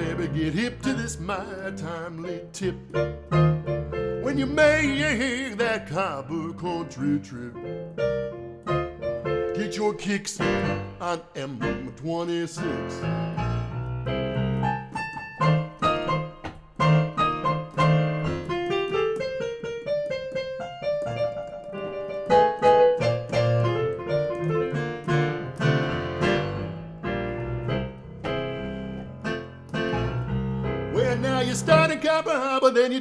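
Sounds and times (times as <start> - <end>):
blues piano playing: 0.0 - 33.0.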